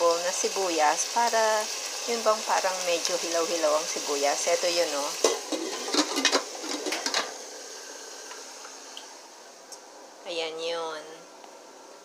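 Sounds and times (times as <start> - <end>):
food sizzling in a pot: 0.0 - 9.6.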